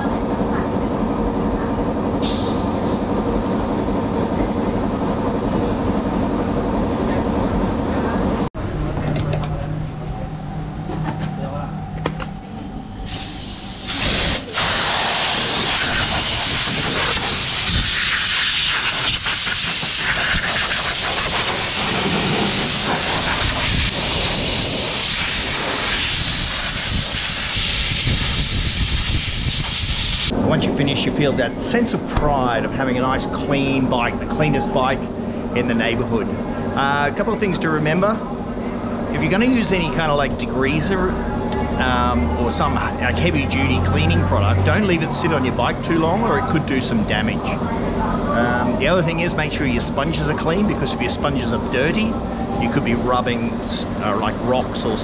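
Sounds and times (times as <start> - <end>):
steady mechanical hum: 0.0 - 55.0
compressed-air blow gun hissing: 13.1 - 30.3.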